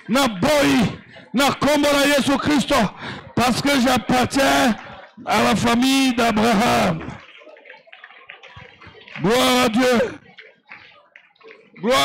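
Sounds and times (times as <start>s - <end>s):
man speaking over loudspeaker: 0.0s - 7.2s, 9.2s - 10.2s, 11.8s - 12.0s
faint background voices: 0.0s - 12.0s.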